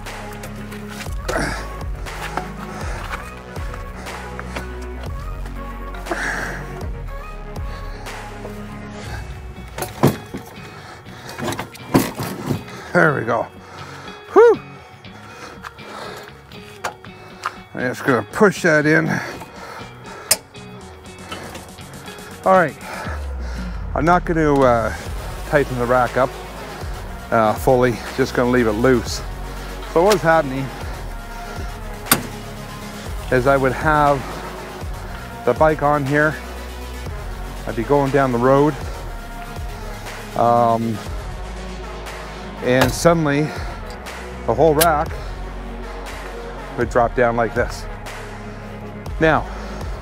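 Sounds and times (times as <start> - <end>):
background music: 0.0 - 50.0
metal clunks and scrapes: 9.7 - 10.6, 11.3 - 12.8, 20.2 - 20.6, 21.2 - 21.8, 32.0 - 32.5.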